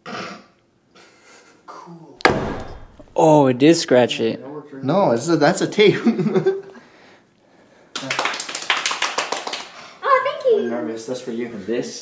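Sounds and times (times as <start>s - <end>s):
group of people clapping: 7.9s - 9.9s.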